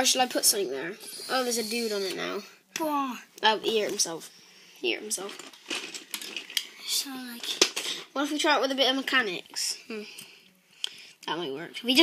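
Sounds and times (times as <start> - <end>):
plastic bricks clicking together: 5.3 - 6.7.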